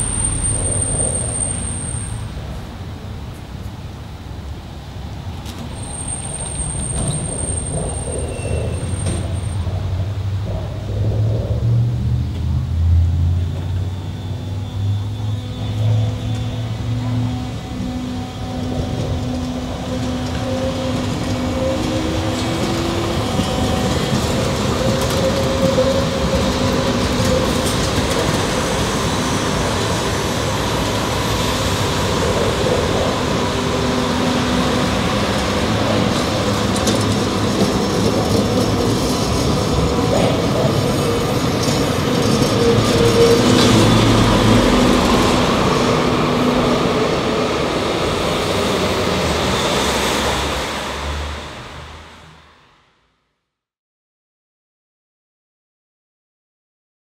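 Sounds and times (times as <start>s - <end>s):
light-rail car hum: 0.0s - 53.2s
rolling wheel noise: 5.3s - 50.6s.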